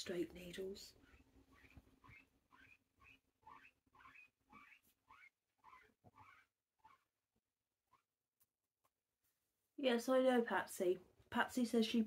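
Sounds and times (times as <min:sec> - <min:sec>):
guinea pig squeaking: 0:00.0 - 0:07.2, 0:07.8 - 0:08.2.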